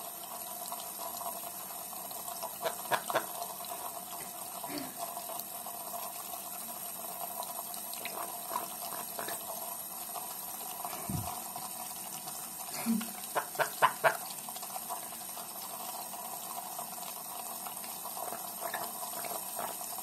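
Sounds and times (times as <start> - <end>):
tap water running into sink: 0.0 - 20.0.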